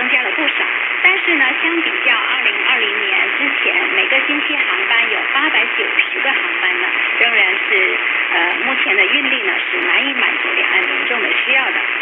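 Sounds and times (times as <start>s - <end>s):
faint radio hiss: 0.0s - 12.0s
news commentary over radio: 0.0s - 12.0s.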